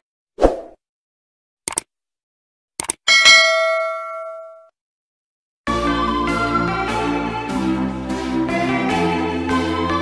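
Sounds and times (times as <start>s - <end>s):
double mouse click: 1.7s - 1.9s, 2.8s - 3.0s
notification bell ding: 3.1s - 4.7s.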